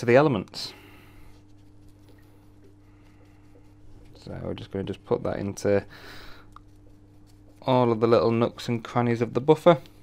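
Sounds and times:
steady low hum: 0.0 - 10.0
brush dabbing light ticks: 1.3 - 9.9.

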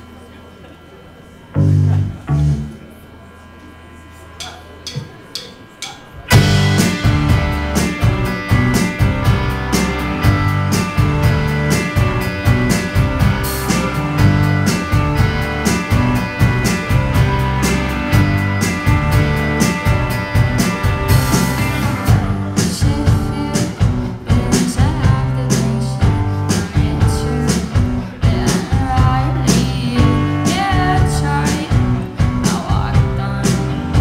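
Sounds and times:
rock band playing: 1.6 - 2.8, 6.1 - 34.0
drumstick clicks: 4.4 - 6.1.

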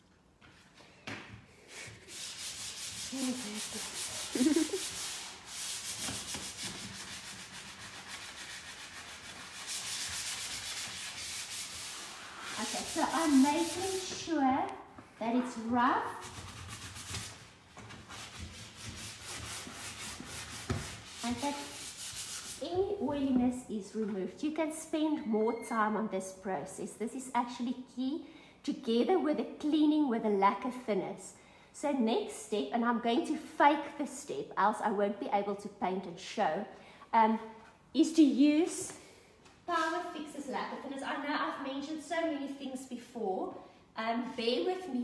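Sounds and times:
sandpaper rubbing on plastic: 1.7 - 14.1, 16.2 - 22.6.

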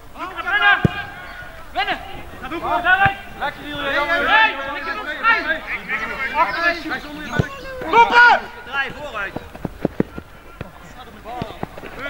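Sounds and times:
player shouting: 0.2 - 9.2
football knocks: 0.8 - 1.4, 3.0 - 3.8, 8.8 - 12.0.

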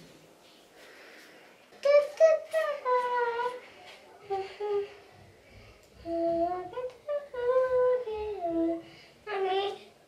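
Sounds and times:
toddler singing wordless tune: 1.8 - 5.0, 6.0 - 10.0.

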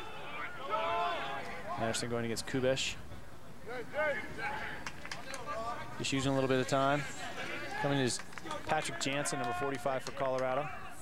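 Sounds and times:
distant players calling out: 3.2 - 11.0.

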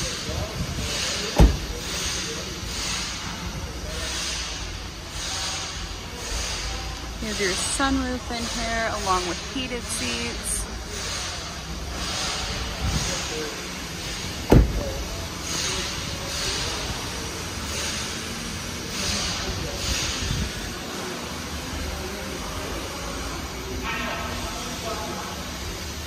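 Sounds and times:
service shop rumble: 0.0 - 26.0
car door shutting: 1.3 - 1.9, 14.4 - 15.1.

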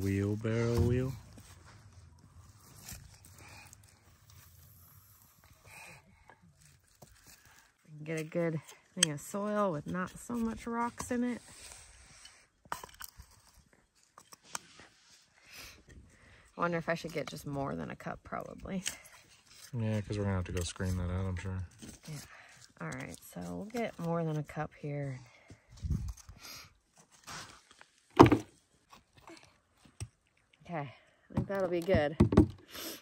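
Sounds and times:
trowel scraping gravelly soil: 0.0 - 5.9.

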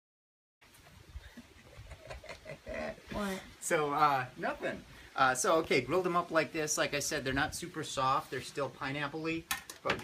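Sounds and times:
man's voice murmuring: 2.4 - 3.6.

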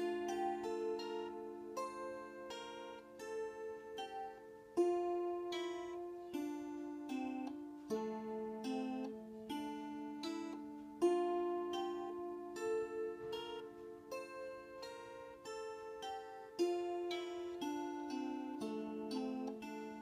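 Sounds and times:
zither strings plucked: 0.0 - 20.0.

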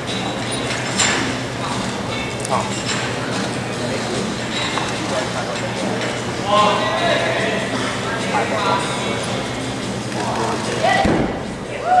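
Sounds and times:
crowd voices in large hall: 0.0 - 12.0
heavy thud on mat: 11.0 - 11.4.

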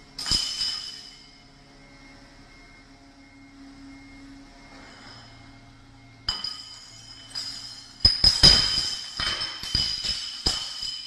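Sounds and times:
sharp ringing clink: 0.2 - 1.5, 6.2 - 11.0.

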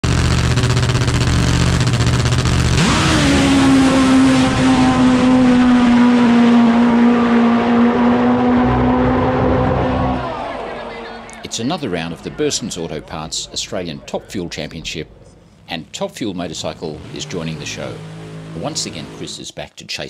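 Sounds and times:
drag motorcycle engine revving: 0.0 - 19.4.

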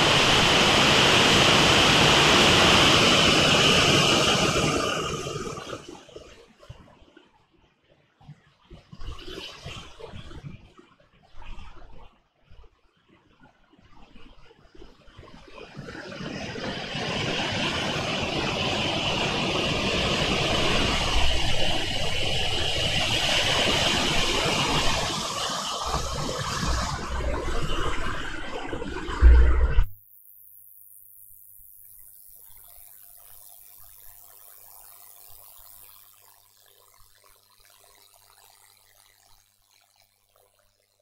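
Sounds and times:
loud steady rushing noise: 0.0 - 5.8, 17.0 - 27.2.

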